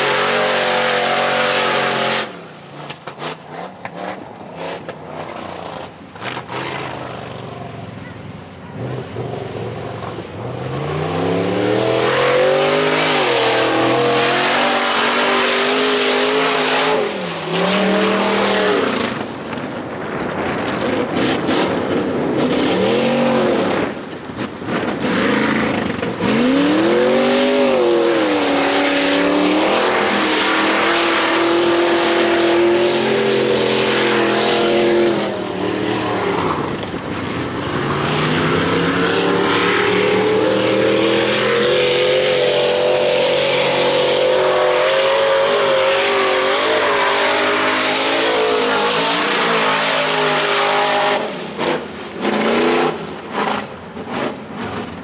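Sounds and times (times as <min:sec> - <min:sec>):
race truck engine revving: 0:00.0 - 0:07.9, 0:08.5 - 0:55.0.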